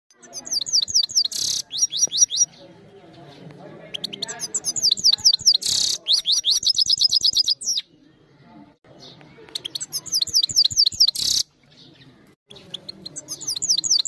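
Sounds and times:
bird twittering and trilling: 0.1 - 14.0.

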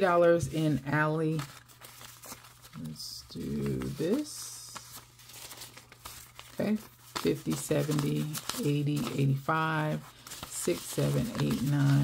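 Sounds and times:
paper bills rustling: 0.3 - 12.0.

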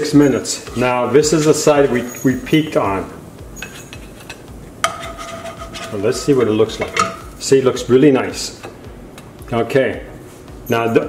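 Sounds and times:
pan ringing: 0.0 - 7.5
spatula knocking frying pan: 3.6 - 7.4.

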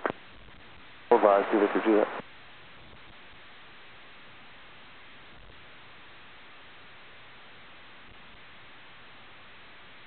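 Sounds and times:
faint radio hiss: 0.0 - 10.0
radio transmission voice: 1.1 - 2.2.

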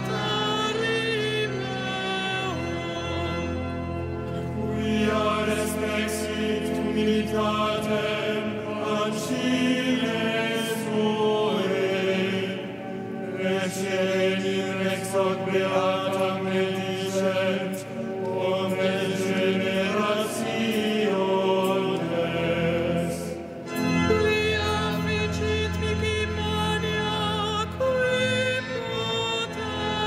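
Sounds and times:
choir chanting: 0.0 - 30.0.

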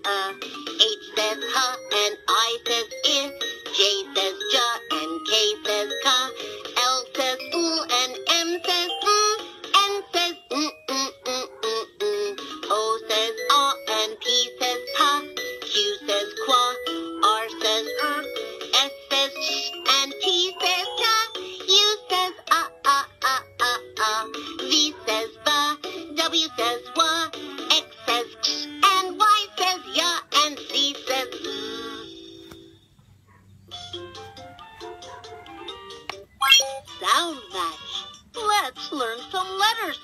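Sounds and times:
synthetic voice singing children's tune: 0.0 - 32.1, 36.3 - 40.0.

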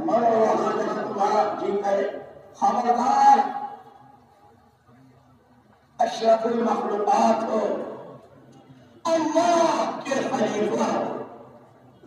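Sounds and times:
man speaking: 0.0 - 3.8, 6.0 - 8.1, 9.0 - 11.4.

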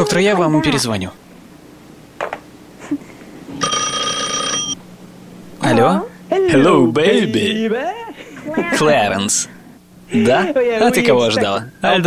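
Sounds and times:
telephone ringing: 3.6 - 4.8.

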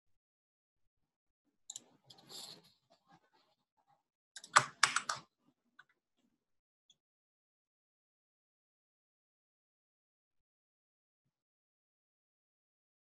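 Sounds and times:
keyboard and mouse clicks: 4.4 - 5.3.

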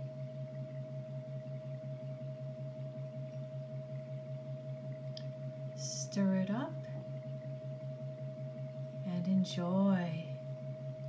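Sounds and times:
low wavering hum: 0.0 - 11.0.

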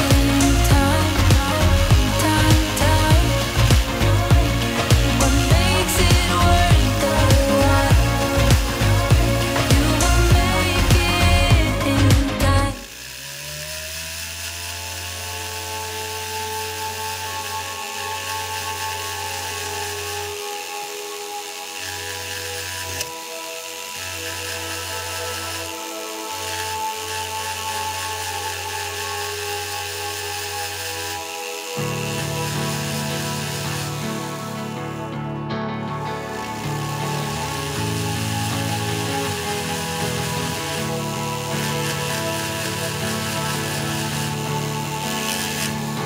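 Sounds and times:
low hum: 0.0 - 46.0
rotary handpiece whining: 0.0 - 46.0.

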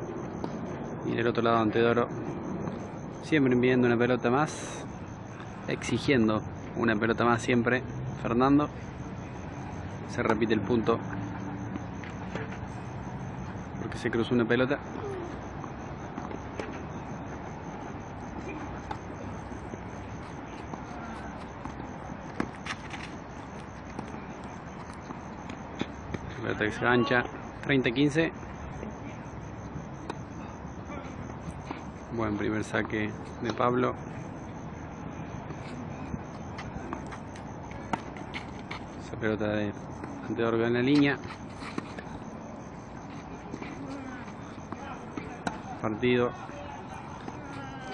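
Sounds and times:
low outdoor hum: 0.0 - 47.9.

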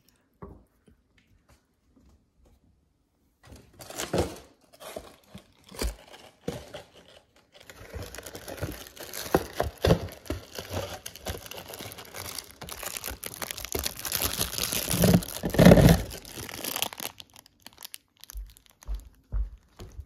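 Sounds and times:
carton and foil pouch crinkling: 3.8 - 19.2.

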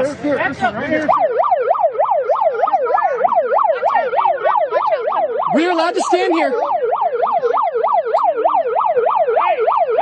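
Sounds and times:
police siren yelping: 0.9 - 10.0.

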